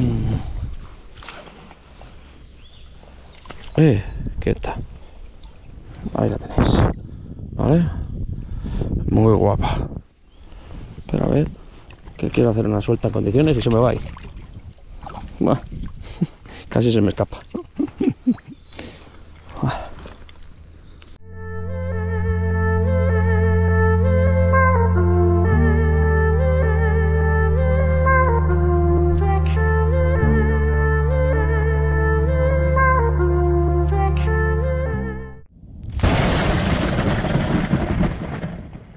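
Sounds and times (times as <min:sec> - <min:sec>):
river ambience: 0:00.0 - 0:04.0, 0:16.0 - 0:35.8
man laughing: 0:17.4 - 0:18.6
small bird chirping: 0:18.2 - 0:21.2
music: 0:21.2 - 0:35.5
dense rumble: 0:21.2 - 0:38.9
loud cinematic hit: 0:35.8 - 0:38.8.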